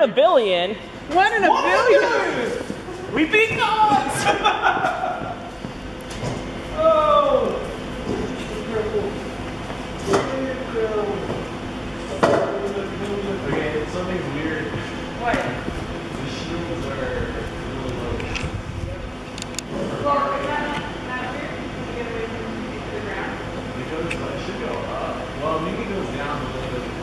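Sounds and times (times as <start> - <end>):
people talking indistinctly: 0.0 - 5.6.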